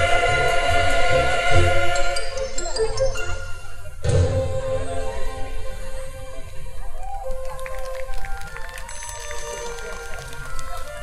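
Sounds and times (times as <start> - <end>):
mixed choir singing a carol: 0.0 - 2.6.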